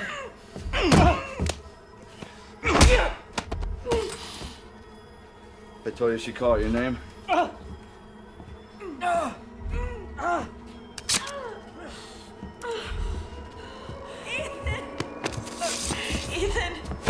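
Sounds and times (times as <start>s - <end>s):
tense low film score: 0.0s - 17.0s.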